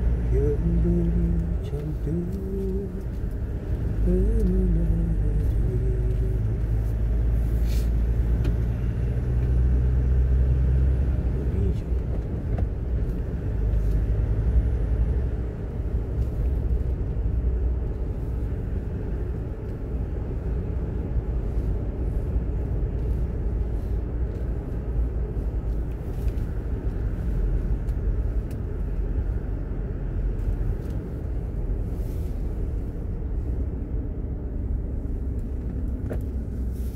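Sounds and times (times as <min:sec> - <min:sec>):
car engine and tyres rumbling: 0:00.0 - 0:36.9.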